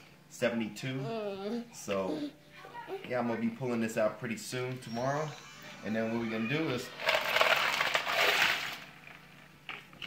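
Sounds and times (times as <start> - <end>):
ice cubes clattering into bucket: 7.0 - 8.9.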